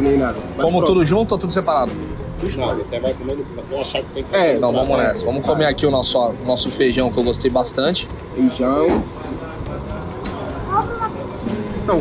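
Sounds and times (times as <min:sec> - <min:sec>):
dining room background hum: 0:00.0 - 0:12.0
faint distant voices: 0:00.0 - 0:12.0.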